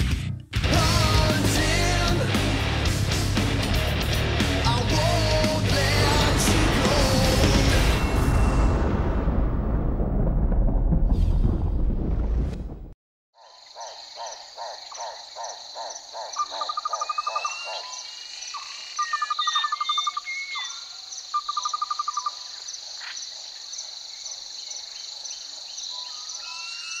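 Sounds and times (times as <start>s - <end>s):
repeated animal call: 13.4s - 22.4s
trilled birdsong: 13.4s - 27.0s.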